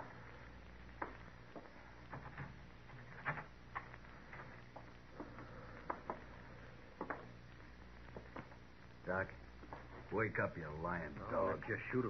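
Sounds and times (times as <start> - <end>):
low steady recording hum: 0.0 - 12.0.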